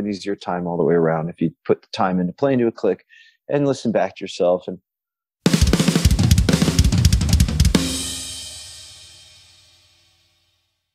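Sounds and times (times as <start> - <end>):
drum fill on snare and bass drum: 5.4 - 10.1.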